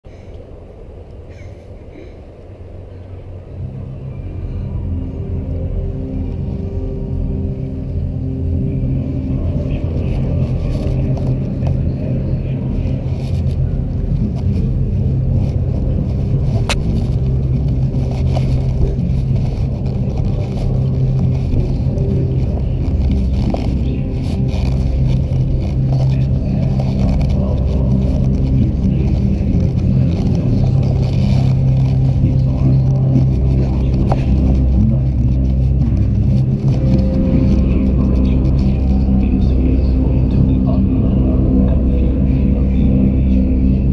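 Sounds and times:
low held tones: 0.0 - 43.9
camera handling rumble: 14.2 - 37.6.

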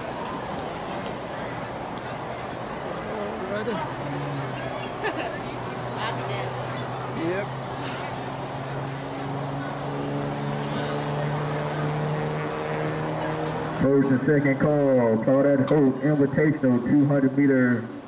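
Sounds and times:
people's voices: 0.0 - 18.0.

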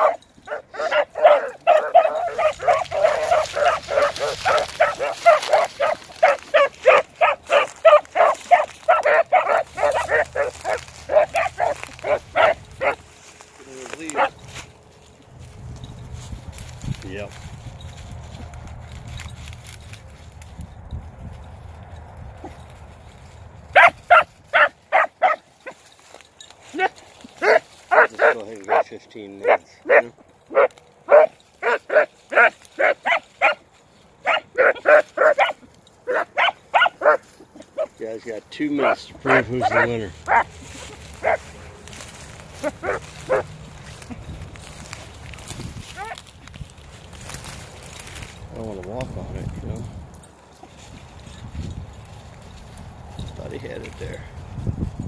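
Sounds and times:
hounds baying: 0.0 - 20.4, 21.8 - 49.1.

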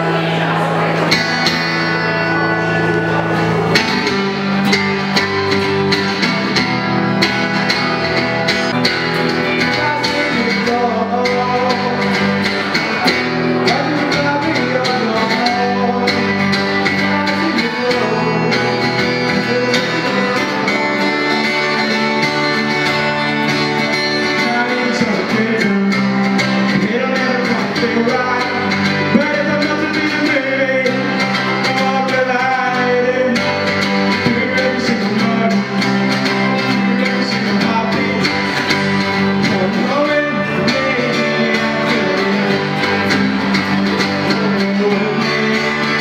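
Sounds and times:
acoustic guitar strumming: 0.0 - 46.0
man singing: 0.0 - 46.0.

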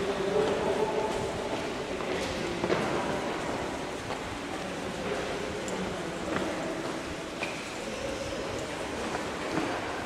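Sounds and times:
rushing ambient noise in tunnel: 0.0 - 10.0.

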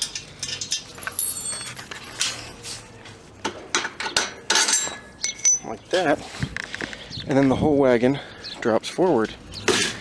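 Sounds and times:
metal pin clinking on steel: 4.6 - 5.8.

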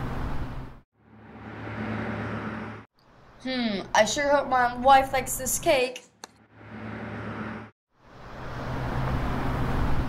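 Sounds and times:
road noise: 0.0 - 10.0
car engine running: 1.0 - 2.9, 6.4 - 7.7.

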